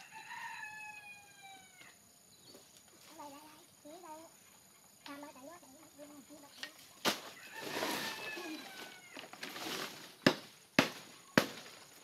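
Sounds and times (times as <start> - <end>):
blade chopping stalks: 9.4 - 12.0.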